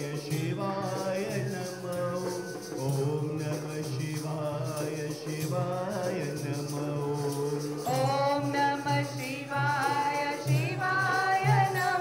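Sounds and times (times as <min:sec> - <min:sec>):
rhythmic metal jingling: 0:00.0 - 0:12.0.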